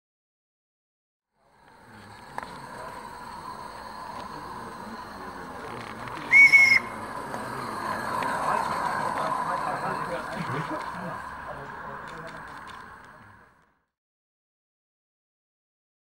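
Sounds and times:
steady background noise: 1.4 - 13.8
steam locomotive whistle: 2.6 - 10.2.

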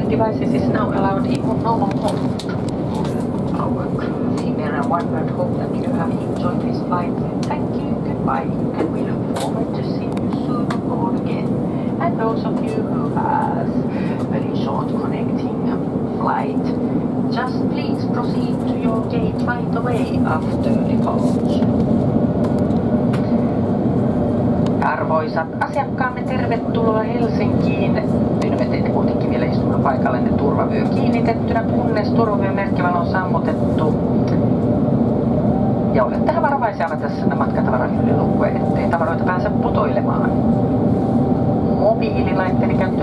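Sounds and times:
faint passenger chatter: 0.0 - 23.6, 24.7 - 34.7, 35.9 - 41.0
aircraft cabin rumble and engine hum: 0.0 - 43.0.

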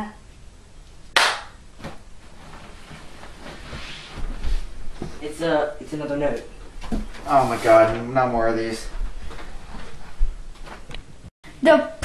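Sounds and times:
sharp slap-like impact: 1.2 - 2.0.

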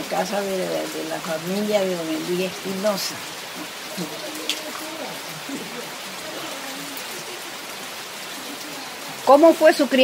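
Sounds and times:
faint low voices murmuring: 3.2 - 9.3.

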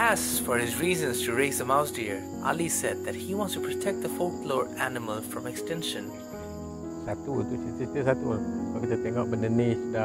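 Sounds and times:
background music: 0.0 - 10.0
insects chirring: 0.0 - 10.0.

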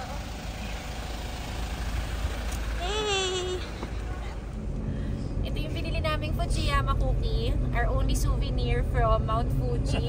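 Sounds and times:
van engine idling: 0.0 - 10.0.

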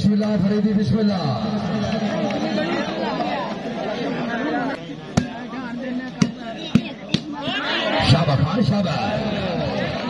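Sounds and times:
chatter of people: 0.0 - 10.0
hand striking volleyball: 5.1 - 5.4, 6.1 - 7.4.

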